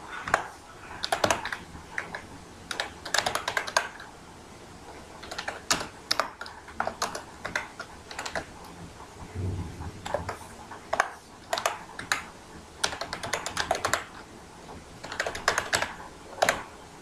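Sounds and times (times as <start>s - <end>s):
typing on computer keyboard: 0.3s - 4.1s, 5.2s - 8.5s, 10.0s - 14.3s, 15.0s - 16.7s.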